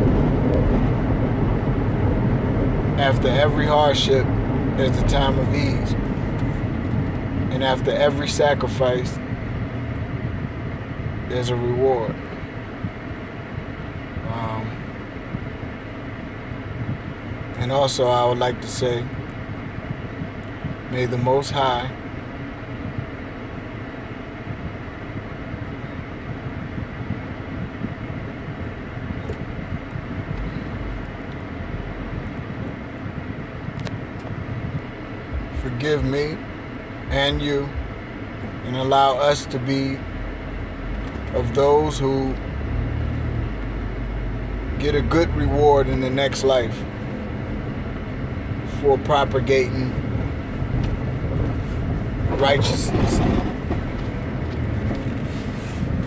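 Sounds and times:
car cabin rumble and hiss: 0.0s - 56.0s
deeper rumble: 0.0s - 56.0s
road noise: 0.0s - 56.0s.

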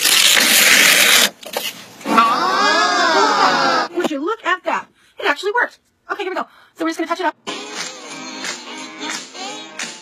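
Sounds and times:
tape ripping off skin: 0.0s - 1.7s.

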